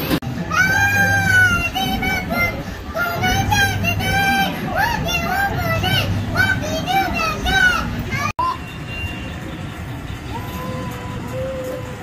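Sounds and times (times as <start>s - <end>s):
arcade hubbub: 0.0s - 12.0s
high child-like voice singing: 0.4s - 8.6s.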